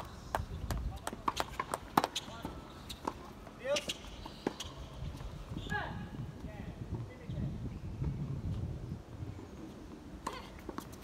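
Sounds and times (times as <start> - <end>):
tennis balls bouncing and struck: 0.2 - 5.3.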